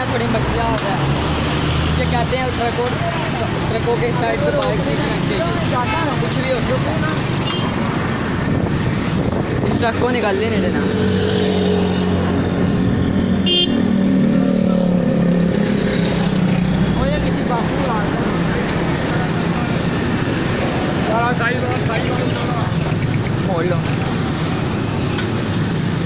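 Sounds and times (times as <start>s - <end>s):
traffic engines and horns: 0.0s - 26.0s
short horn toot: 13.4s - 13.8s.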